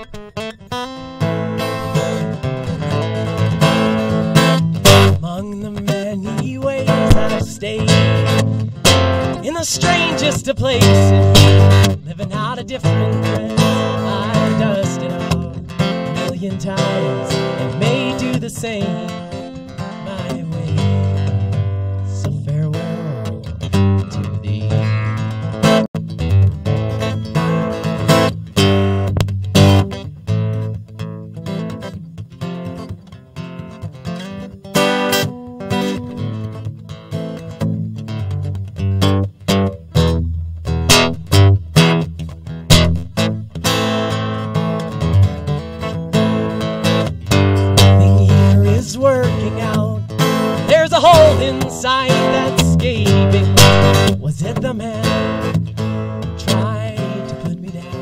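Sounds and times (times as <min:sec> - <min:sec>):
live band with strummed acoustic guitar: 0:00.0 - 0:58.0.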